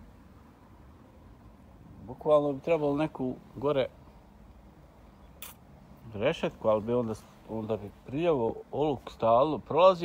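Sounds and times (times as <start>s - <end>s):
low background noise: 0.0s - 10.0s
brief hiss: 5.2s - 6.0s.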